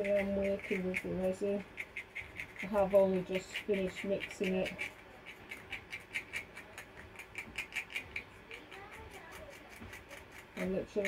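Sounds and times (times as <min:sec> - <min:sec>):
stir stick scraping plastic cup: 0:00.0 - 0:11.0.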